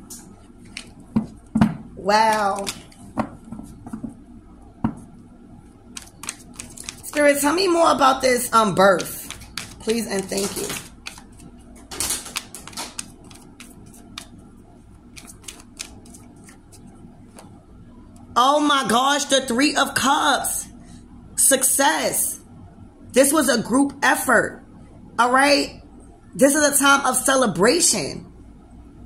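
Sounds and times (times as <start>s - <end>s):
cards being shuffled by hand: 0.6s - 1.4s, 2.2s - 3.9s, 6.0s - 7.8s, 8.8s - 14.4s, 15.1s - 17.5s
card slaps: 2.3s - 2.9s, 8.9s - 11.2s, 11.9s - 14.3s, 15.2s - 16.6s.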